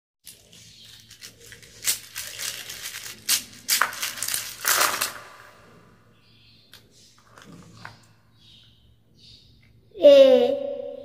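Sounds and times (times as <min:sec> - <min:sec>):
plastic letters clattering on surface: 0:00.2 - 0:05.6.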